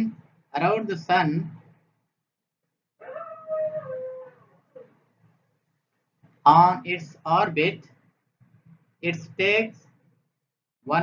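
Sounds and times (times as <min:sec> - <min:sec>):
high whining cry: 0:03.0 - 0:04.9.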